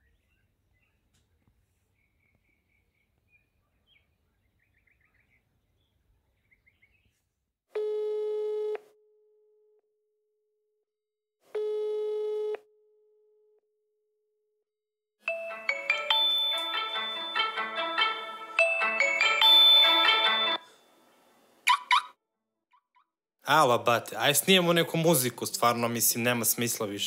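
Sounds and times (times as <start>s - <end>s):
faint bird chirps: 0.0s - 7.3s
marimba-style phone ringtone: 15.3s - 20.8s
telephone ringback tones: 15.3s - 21.0s.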